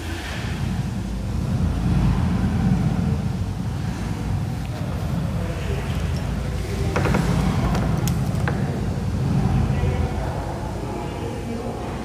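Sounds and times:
low steady rumbling: 0.0 - 12.0.

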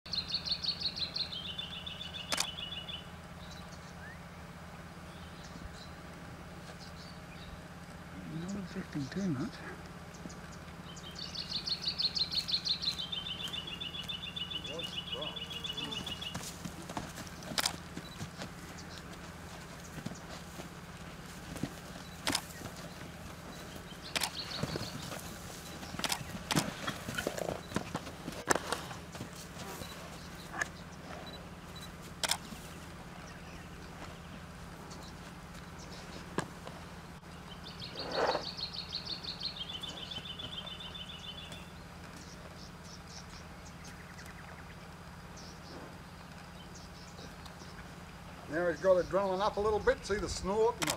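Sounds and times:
hooves on dirt: 0.5 - 50.9
bird trilling: 10.2 - 19.2, 22.0 - 27.8, 37.4 - 41.7
horse snorting: 24.5 - 31.4, 37.8 - 38.6.

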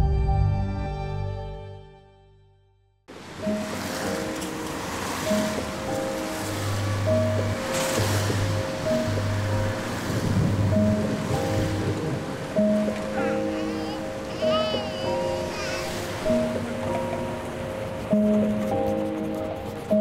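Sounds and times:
gentle background music: 3.1 - 20.0
steady rushing noise: 3.1 - 20.0.

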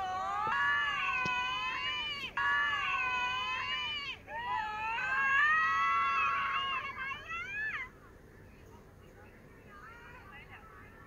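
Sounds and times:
high-pitched squealing cries: 0.0 - 7.9.

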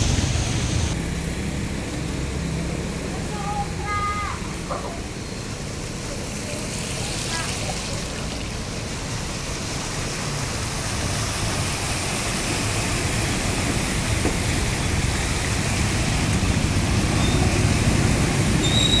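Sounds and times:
engines rumbling: 0.0 - 19.0
wheels washing through water: 0.0 - 19.0.

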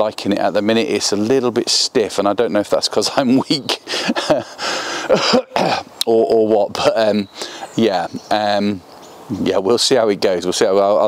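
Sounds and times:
man laughing: 3.1 - 5.9.

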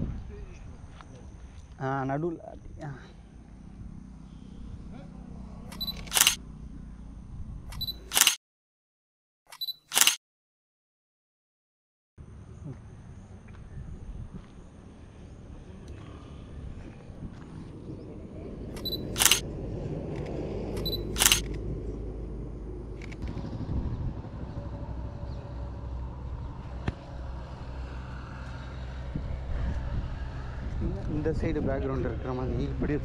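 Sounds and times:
low outdoor rumble: 0.0 - 8.1, 12.2 - 33.0
camera shutter clicks: 5.7 - 6.4, 7.7 - 8.4, 9.5 - 10.2, 18.8 - 19.4, 20.8 - 21.5.

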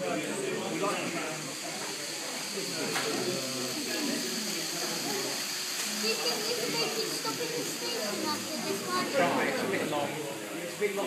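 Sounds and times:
indistinct background voices: 0.0 - 11.0
steady hiss: 0.0 - 11.0.

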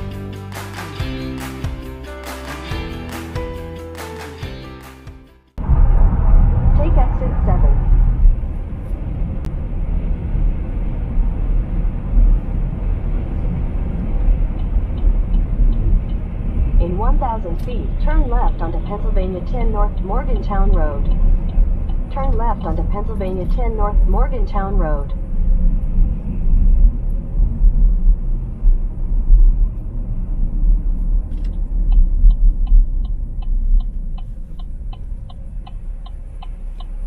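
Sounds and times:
road and engine rumble inside car: 5.7 - 37.0
person talking: 16.8 - 21.1, 22.1 - 25.2.

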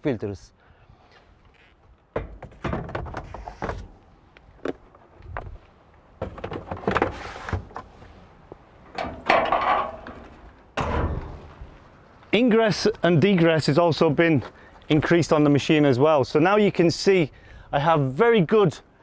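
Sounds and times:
knocks and thunks: 2.1 - 3.9, 6.2 - 7.9, 8.9 - 11.8.

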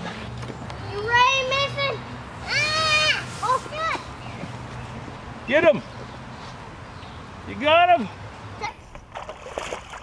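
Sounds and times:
fish splashing in water: 9.1 - 10.0.

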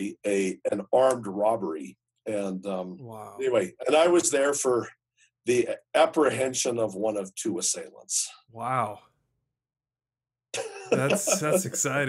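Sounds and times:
man talking: 0.0 - 4.9, 5.5 - 9.0, 10.6 - 12.0.

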